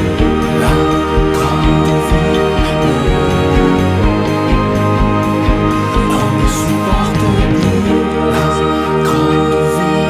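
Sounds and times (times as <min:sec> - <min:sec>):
band playing instrumental: 0:00.0 - 0:10.0.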